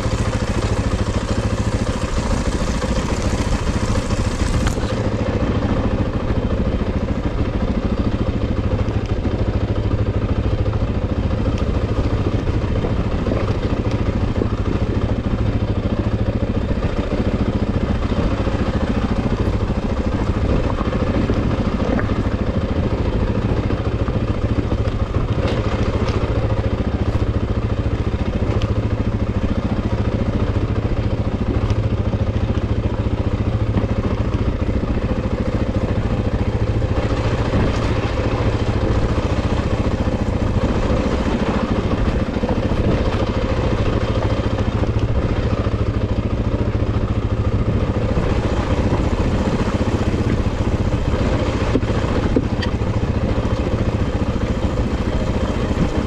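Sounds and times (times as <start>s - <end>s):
knocks and rattles over ground: 0.0s - 6.6s, 11.2s - 56.0s
off-road vehicle engine running: 0.0s - 56.0s.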